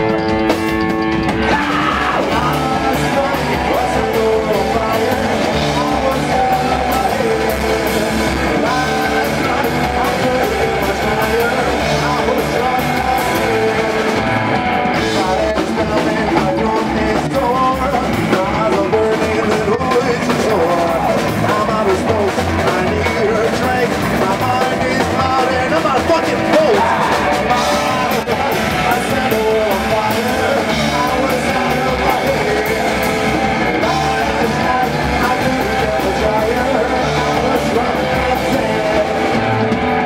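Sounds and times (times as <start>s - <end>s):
drums with cymbals: 0.0s - 40.0s
person singing: 0.0s - 40.0s
upright double bass: 0.0s - 40.0s.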